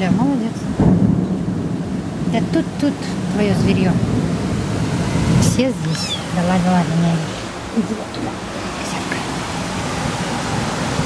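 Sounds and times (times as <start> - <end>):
heavy rain falling: 0.0 - 11.0.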